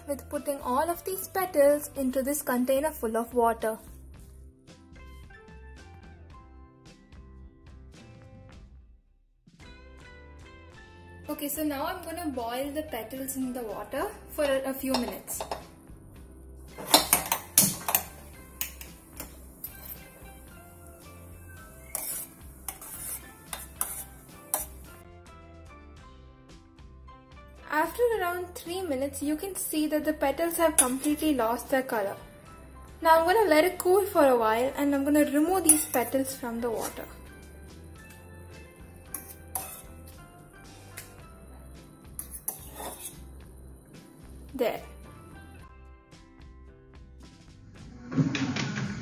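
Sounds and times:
background music: 0.0s - 49.0s
metal spoon clinking on pot: 14.9s - 15.6s, 16.8s - 20.1s, 21.8s - 24.8s, 30.8s - 31.2s, 35.6s - 37.1s, 39.1s - 40.1s, 42.2s - 43.2s.

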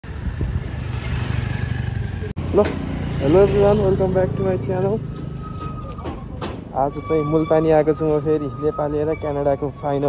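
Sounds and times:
motorcycle engine running: 0.1s - 4.9s.

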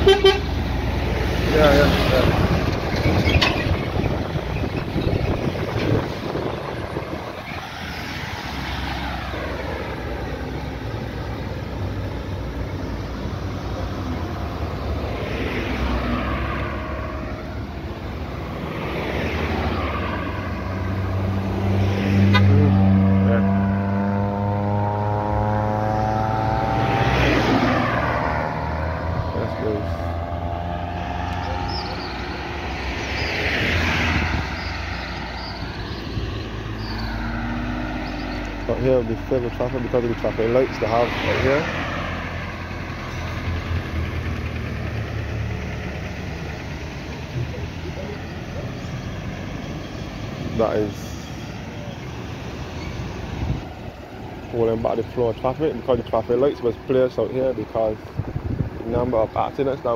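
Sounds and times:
loud engine passing: 0.0s - 59.9s
road traffic passing: 0.0s - 59.9s.

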